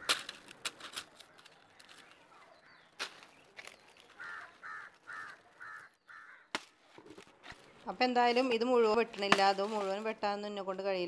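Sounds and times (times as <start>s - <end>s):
crow cawing: 4.2s - 6.5s.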